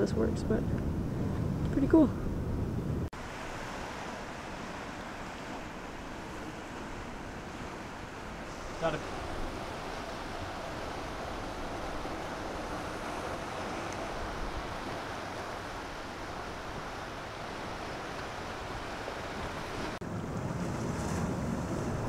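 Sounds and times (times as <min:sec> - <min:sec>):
wind rumbling on microphone: 0:00.0 - 0:22.0
surf washing against rocky shore: 0:03.2 - 0:22.0.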